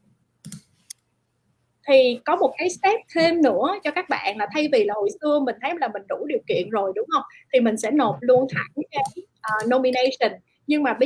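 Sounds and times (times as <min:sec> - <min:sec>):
computer mouse clicks: 0:00.4 - 0:01.1, 0:08.9 - 0:10.1.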